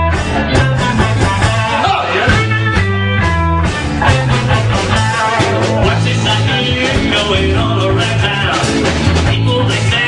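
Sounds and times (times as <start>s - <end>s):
blues band playing: 0.0s - 10.0s
electric guitar: 0.0s - 10.0s.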